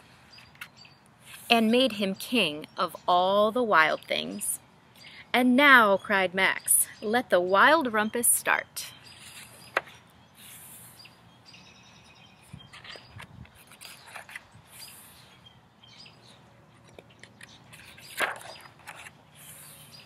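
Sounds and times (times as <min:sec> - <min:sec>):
birds chirping: 0:00.0 - 0:20.0
book pages turning: 0:12.7 - 0:14.5, 0:16.8 - 0:19.9.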